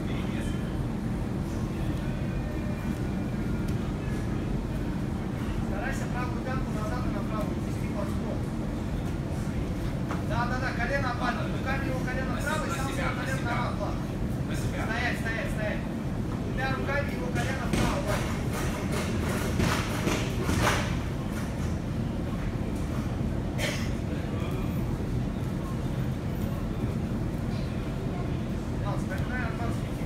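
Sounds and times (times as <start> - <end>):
low rumble of a hall: 0.0 - 30.0.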